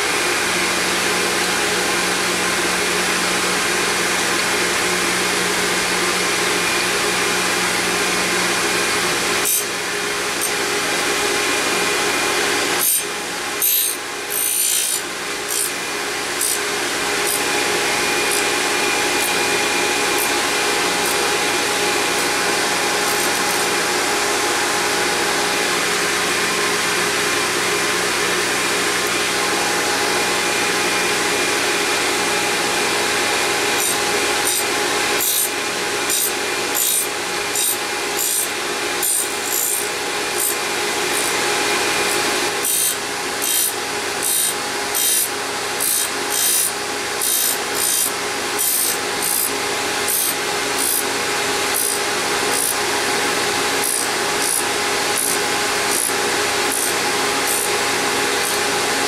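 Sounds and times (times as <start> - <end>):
grinder hum: 0.0 - 59.0
high grinding hiss: 16.3 - 26.0.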